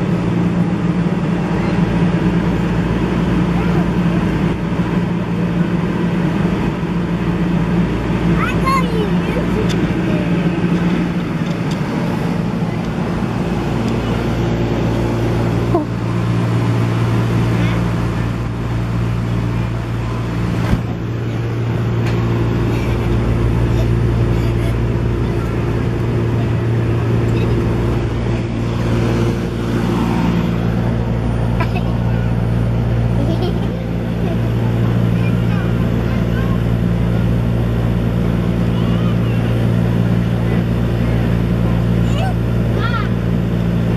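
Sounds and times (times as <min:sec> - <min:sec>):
electric air blower drone: 0:00.0 - 0:43.9.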